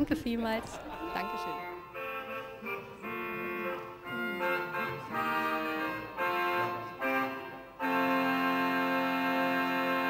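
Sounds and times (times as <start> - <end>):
slow keyboard chords: 1.0 - 10.0.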